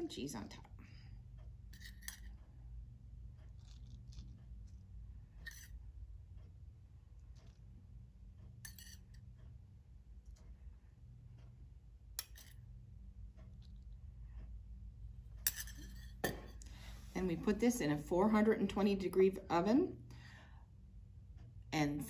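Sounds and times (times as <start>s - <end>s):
low steady hum: 0.0s - 22.0s
spoon clinking on metal bowl: 8.6s - 9.1s, 15.4s - 16.6s.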